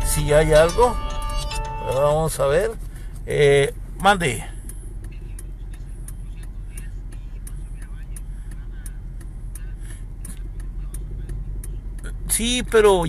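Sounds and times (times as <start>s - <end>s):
engine and road rumble: 0.0s - 13.0s.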